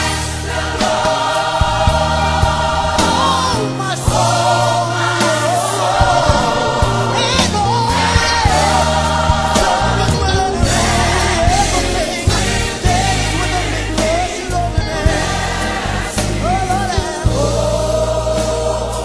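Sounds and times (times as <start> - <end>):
gospel choir singing: 0.0 - 19.0.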